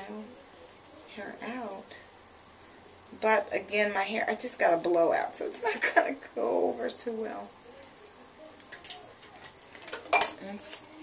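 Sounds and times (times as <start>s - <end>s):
soft crackles: 0.1s - 11.0s.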